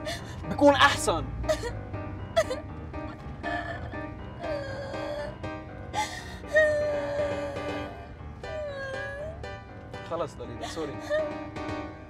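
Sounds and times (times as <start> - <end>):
woman crying and sobbing: 0.0 - 0.8, 1.5 - 1.8, 2.4 - 2.6, 3.5 - 5.3, 6.0 - 9.4, 10.6 - 11.5
background music: 0.0 - 12.0.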